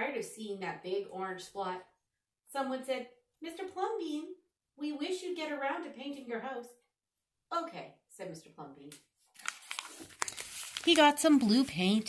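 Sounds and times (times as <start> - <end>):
paper pages rustling and crinkling: 9.3 - 12.0
sharp paper ticks: 9.4 - 12.0.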